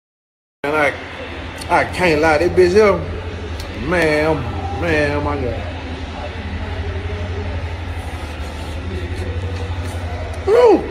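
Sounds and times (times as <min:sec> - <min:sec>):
faint voices: 0:00.7 - 0:10.9
low hum with fast flutter: 0:02.2 - 0:10.9.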